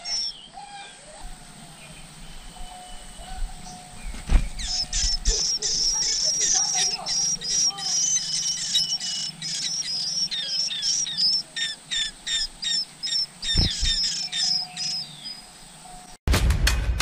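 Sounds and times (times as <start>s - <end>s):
nestlings begging chirps: 0.0s - 16.2s.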